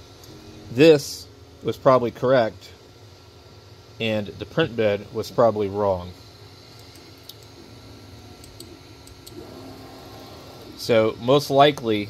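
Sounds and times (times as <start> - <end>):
printer fan hum: 0.0 - 12.0.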